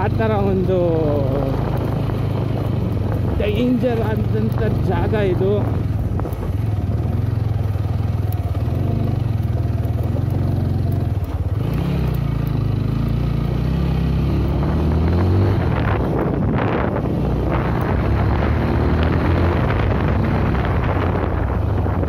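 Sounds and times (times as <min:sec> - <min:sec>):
motorcycle engine revving: 0:00.0 - 0:22.0
rush of noise: 0:11.5 - 0:22.0.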